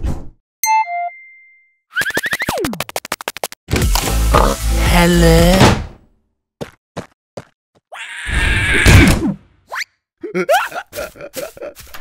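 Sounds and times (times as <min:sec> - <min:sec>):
cartoon footsteps: 0:06.6 - 0:08.0.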